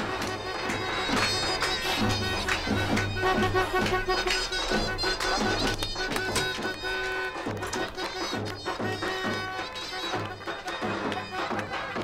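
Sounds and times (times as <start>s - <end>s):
drum beats: 0.0s - 12.0s
shrill reed pipe notes: 0.0s - 12.0s.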